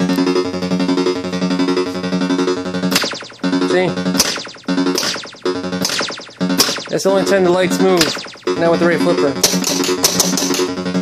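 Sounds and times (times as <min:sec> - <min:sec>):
pinball machine droning tone: 0:00.0 - 0:11.0
pinball flipper clack: 0:02.9 - 0:03.4, 0:04.2 - 0:10.8.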